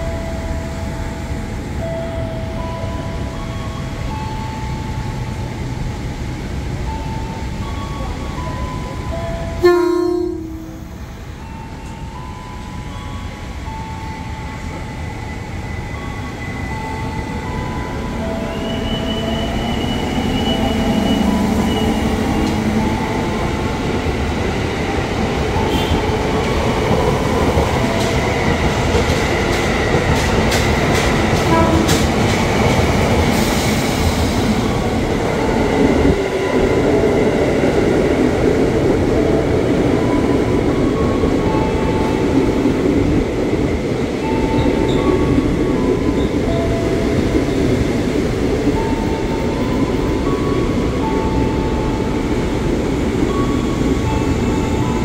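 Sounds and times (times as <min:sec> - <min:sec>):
train rumble: 0:00.0 - 0:55.0.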